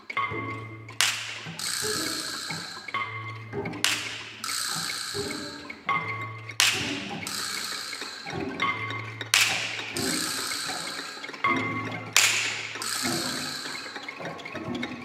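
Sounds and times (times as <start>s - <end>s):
avant-garde orchestral music: 0.0s - 15.0s
scattered clicks and taps: 0.0s - 15.0s
sharp percussive strikes: 0.1s - 11.5s, 12.1s - 14.2s.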